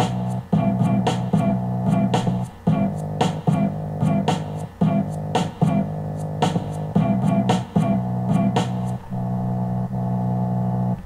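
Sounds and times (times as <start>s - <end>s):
held low bass note: 0.0s - 11.0s
lo-fi instrumental beat on speakers: 0.0s - 11.0s.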